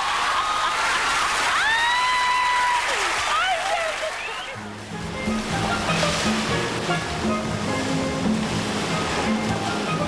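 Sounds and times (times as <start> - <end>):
sea surf breaking: 3.1 - 10.0
background music: 4.6 - 10.0.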